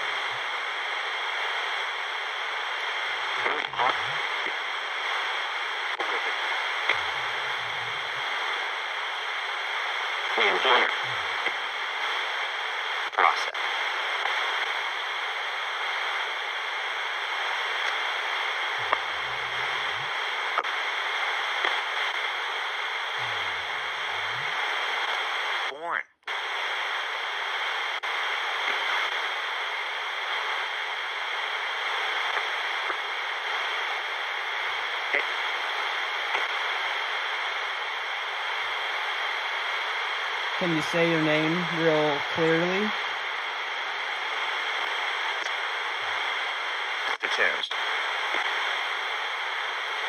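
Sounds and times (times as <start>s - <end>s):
radio static hiss: 0.0s - 50.0s.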